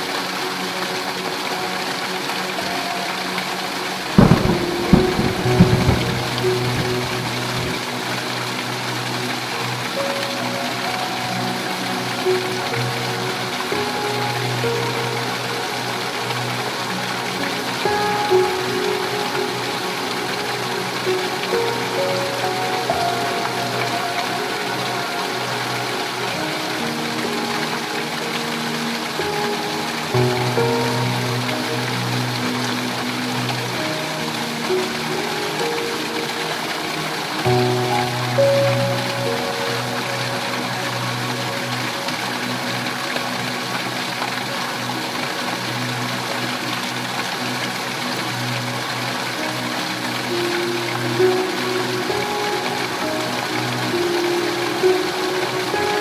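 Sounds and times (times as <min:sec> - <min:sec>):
heavy rain pouring: 0:00.0 - 0:56.0
soft music of held notes: 0:00.0 - 0:56.0
thunder crack and rumble: 0:04.2 - 0:07.8.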